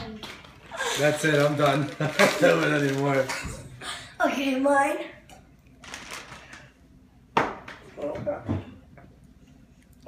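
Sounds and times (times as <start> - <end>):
paper bag rustling: 0.2 - 3.7, 5.8 - 6.8.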